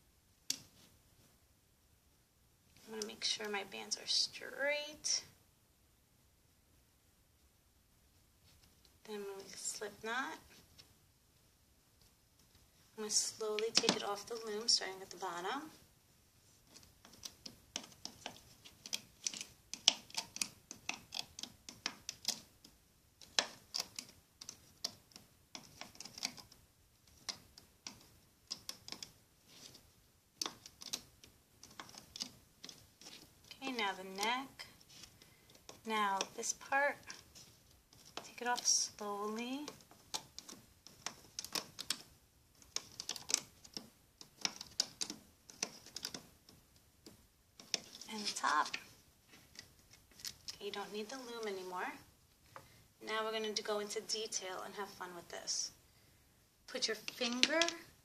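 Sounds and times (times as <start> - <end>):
plastic hook clicking on pegs: 16.7 - 29.8, 30.4 - 33.6, 39.6 - 48.9.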